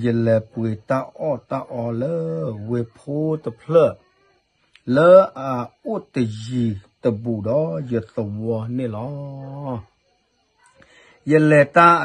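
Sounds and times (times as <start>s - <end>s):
man holding drawn-out syllable: 0.0s - 4.0s, 4.8s - 9.9s.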